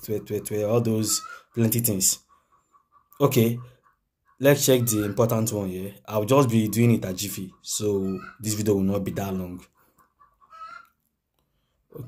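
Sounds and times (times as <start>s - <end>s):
faint animal calls: 0.7s - 5.5s, 6.5s - 8.6s, 9.6s - 11.0s.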